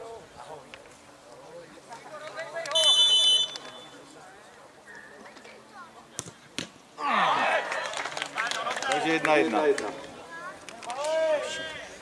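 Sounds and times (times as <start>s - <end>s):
referee's whistle blast: 2.7s - 4.0s.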